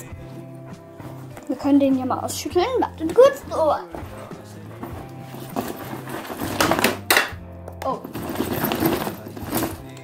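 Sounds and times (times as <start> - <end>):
background music: 0.0 - 10.0
backpack contents rattling: 3.8 - 7.2, 7.9 - 10.0.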